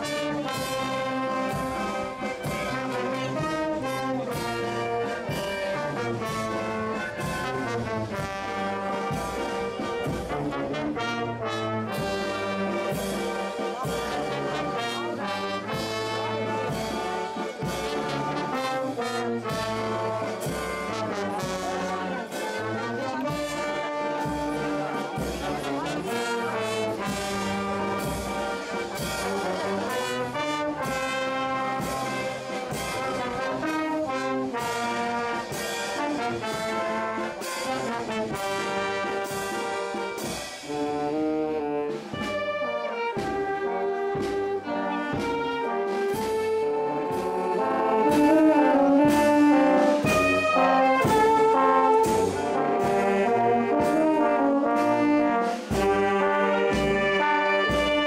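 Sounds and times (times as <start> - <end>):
brass band playing march: 0.0 - 58.0.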